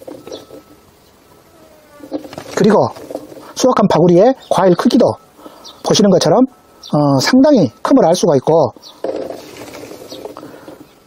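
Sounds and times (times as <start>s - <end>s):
flying insect buzzing: 0.0s - 4.5s, 8.8s - 11.0s
background hiss: 0.0s - 11.0s.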